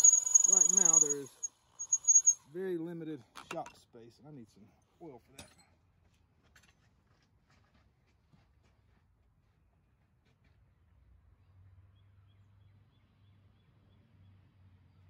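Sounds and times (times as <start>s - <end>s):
electric drill whining: 0.0s - 2.4s
man talking: 0.5s - 1.4s.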